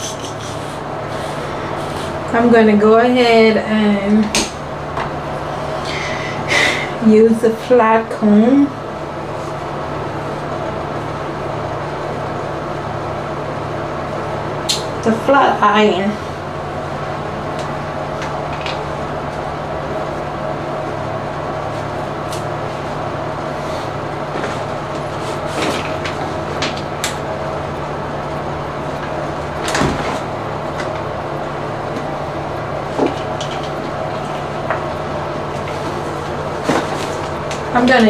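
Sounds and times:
fan humming: 0:00.0 - 0:38.0.

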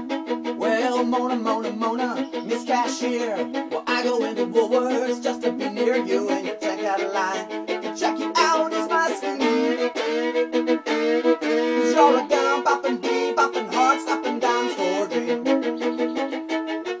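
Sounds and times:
fiddle playing lively tune: 0:00.0 - 0:17.0.

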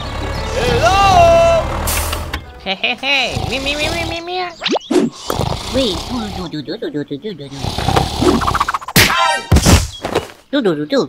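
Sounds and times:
cartoon hit thunks: 0:08.8 - 0:10.2.

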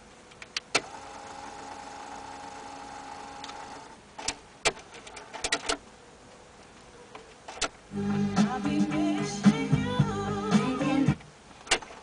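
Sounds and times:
small motor whirring: 0:00.8 - 0:04.0
cassette mechanism clicks: 0:03.4 - 0:05.8, 0:11.6 - 0:12.0
mechanical clicks and clacks: 0:03.4 - 0:05.8.

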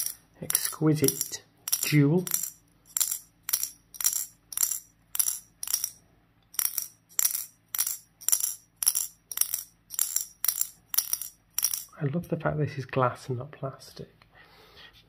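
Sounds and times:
metal ball clicking against glass: 0:00.0 - 0:12.0.

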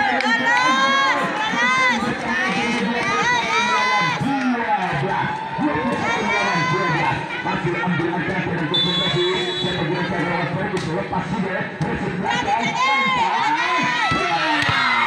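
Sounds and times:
spectators shouting and cheering: 0:00.0 - 0:15.0
high whistle: 0:08.7 - 0:09.8.

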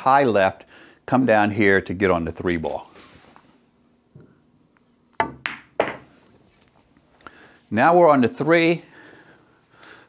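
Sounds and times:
cue striking ball: 0:05.2 - 0:06.1
pool balls clacking: 0:05.2 - 0:06.1.

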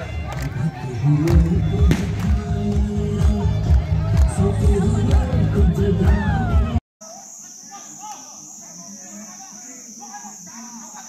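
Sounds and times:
high-pitched insect chorus: 0:07.0 - 0:11.0.

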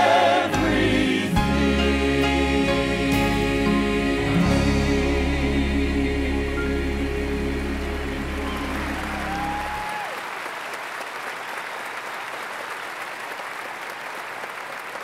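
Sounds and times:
band's held chord: 0:00.5 - 0:09.6
concert audience applauding: 0:08.0 - 0:15.0.

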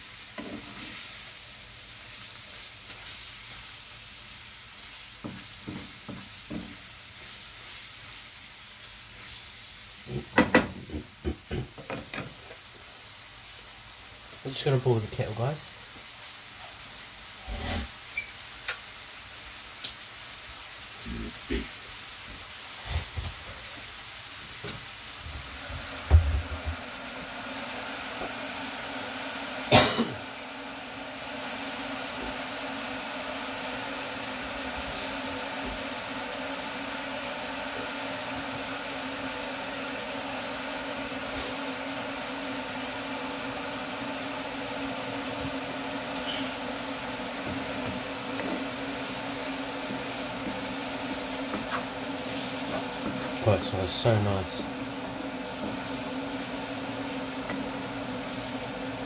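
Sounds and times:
meat sizzling in a frying pan: 0:00.0 - 0:59.0.

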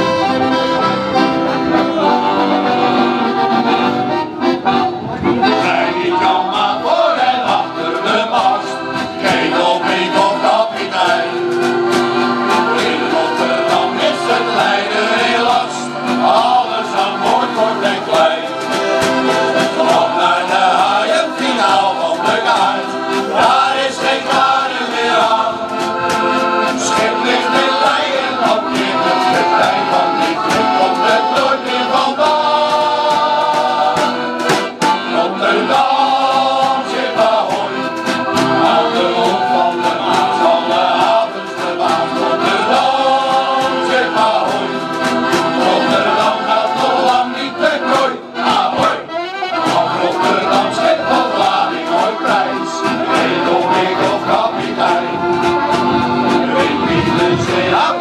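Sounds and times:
accordions: 0:00.0 - 0:58.0
men's choir singing a shanty: 0:00.0 - 0:58.0.

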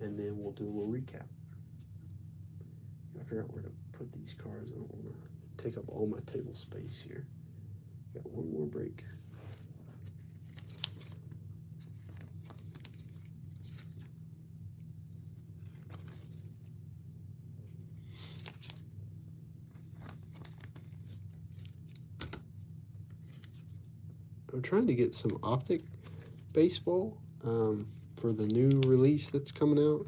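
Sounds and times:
steady low hum: 0:00.0 - 0:30.0
trading cards rustling and clicking: 0:09.5 - 0:14.2, 0:15.2 - 0:16.7, 0:17.7 - 0:18.9, 0:19.7 - 0:23.8, 0:25.1 - 0:27.0, 0:27.6 - 0:30.0.

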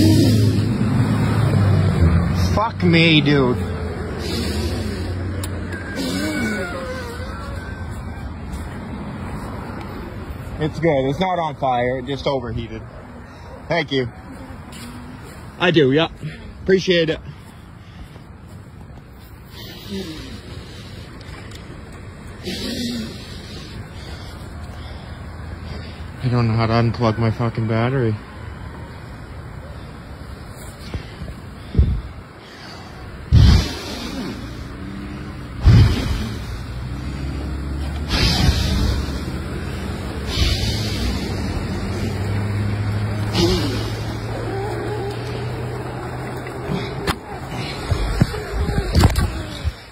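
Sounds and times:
bursts of hissing: 0:04.1 - 0:07.3, 0:33.2 - 0:48.4.

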